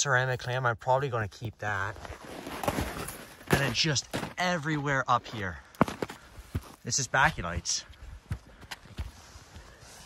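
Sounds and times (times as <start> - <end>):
footsteps on clay and stones: 1.6 - 10.0.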